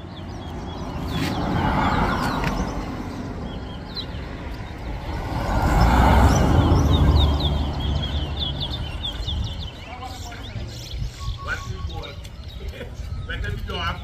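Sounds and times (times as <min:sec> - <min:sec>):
high bird chirps: 0:00.0 - 0:14.0
vehicles passing on street: 0:00.0 - 0:14.0.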